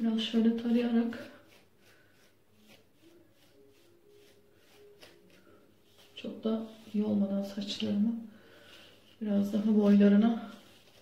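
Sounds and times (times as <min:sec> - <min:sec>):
comb swishing through wet hair: 0:00.0 - 0:11.0.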